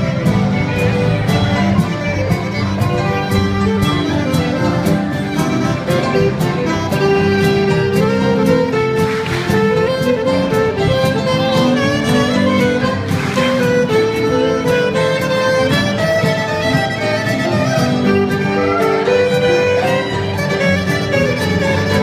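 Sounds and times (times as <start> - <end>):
acoustic guitar accompaniment: 0.0 - 22.0
fiddle melody: 0.0 - 22.0.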